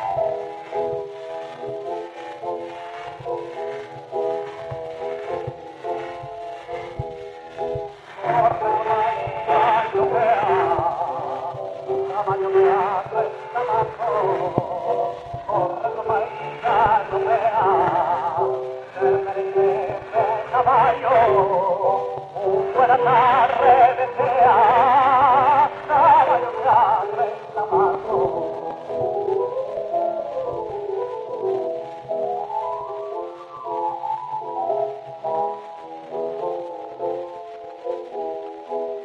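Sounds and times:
piano accompaniment: 0.0s - 39.0s
man singing flamenco: 8.2s - 28.6s.

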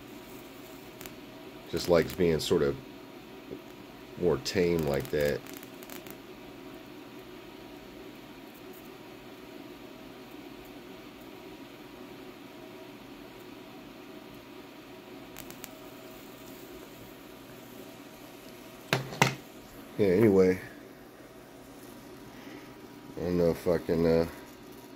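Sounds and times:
tesla coil plasma hiss: 0.0s - 2.8s, 4.2s - 6.3s, 15.3s - 20.7s.

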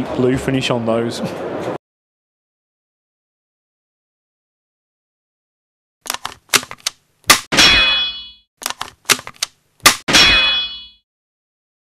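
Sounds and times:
quick metallic clicks: 6.0s - 7.5s, 8.6s - 10.1s
hard metallic hits ringing: 7.3s - 8.4s, 9.9s - 11.0s.

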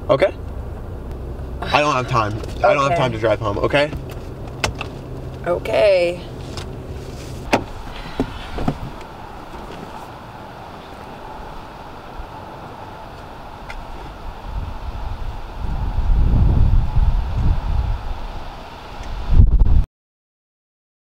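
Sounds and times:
wind buffeting microphone: 6.0s - 19.8s.

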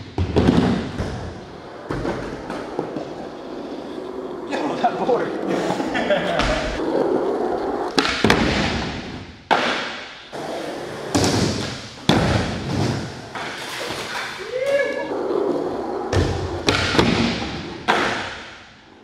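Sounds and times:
skateboard wheels rolling on concrete: 0.0s - 19.0s
person calling out: 14.4s - 15.2s.

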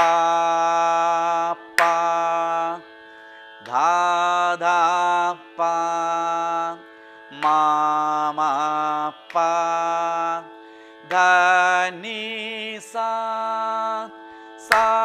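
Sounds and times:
steady drone: 0.0s - 15.0s.

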